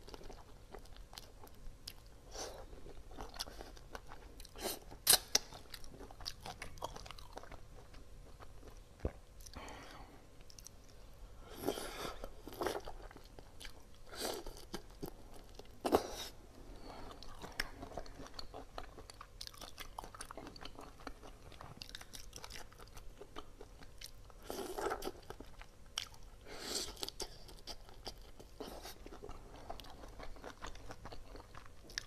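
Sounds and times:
chewing crunchy shrimp shells: 0:00.0 - 0:09.8, 0:16.9 - 0:32.0.

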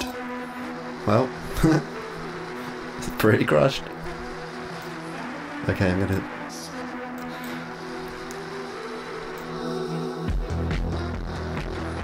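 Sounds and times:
distorted synth chords: 0:00.0 - 0:12.0.

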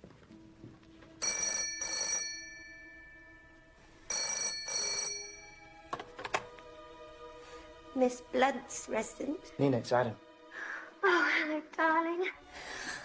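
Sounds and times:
telephone bell ringing: 0:01.2 - 0:05.7.

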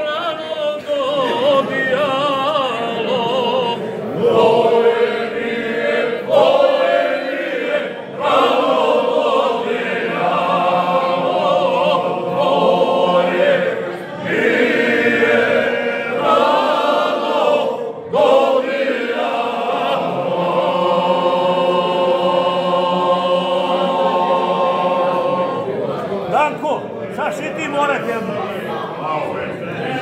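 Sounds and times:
men singing a cappella: 0:00.0 - 0:25.7.

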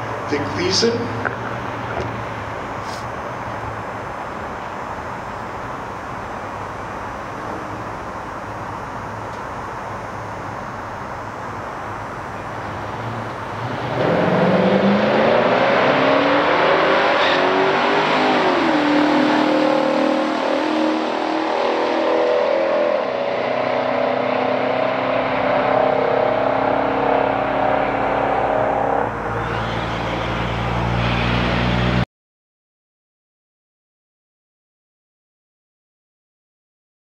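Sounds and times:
car engines revving: 0:00.0 - 0:32.0.

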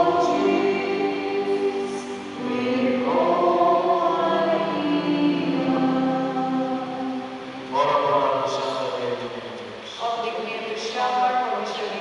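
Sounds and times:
hymn singing: 0:00.0 - 0:09.4.

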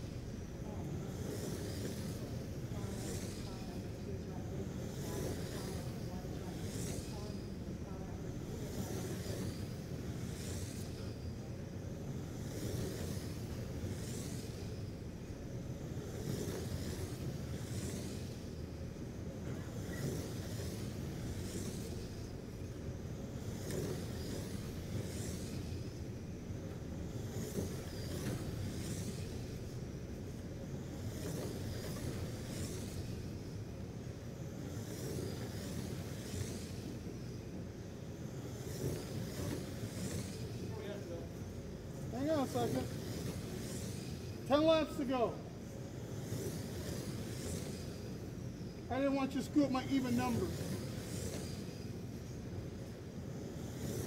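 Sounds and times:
rc truck motors whining: 0:00.0 - 0:54.0
steady low hum: 0:00.0 - 0:54.0.

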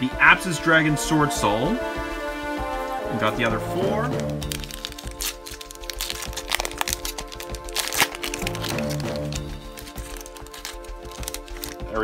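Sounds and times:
background music: 0:00.0 - 0:12.0
plastic wrapper crinkling: 0:04.0 - 0:12.0.

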